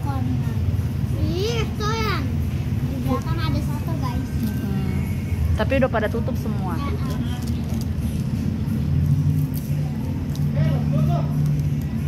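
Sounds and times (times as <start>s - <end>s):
low engine drone: 0.0s - 12.0s.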